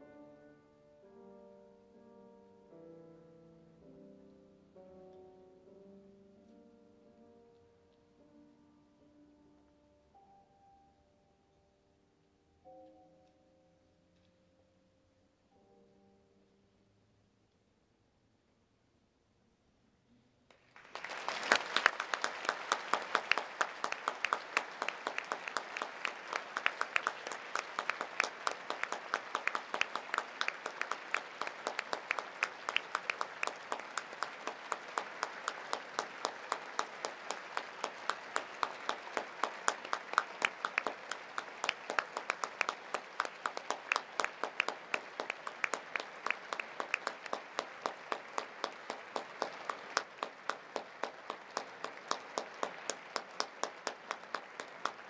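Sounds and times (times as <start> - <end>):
audience applauding: 20.5 - 55.0
close loud hand clapping: 20.5 - 55.0.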